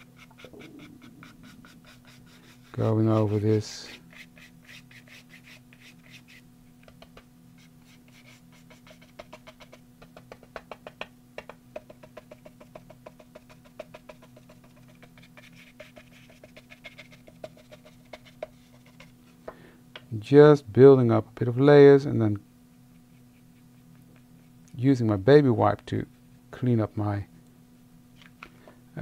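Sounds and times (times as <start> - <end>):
brush bristles tapping and scraping: 8.1 - 19.2.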